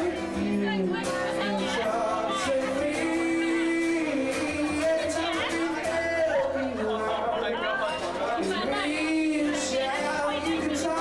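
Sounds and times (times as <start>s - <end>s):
man singing into a microphone: 0.0s - 11.0s
people talking: 0.0s - 11.0s
strummed acoustic guitar: 0.0s - 11.0s.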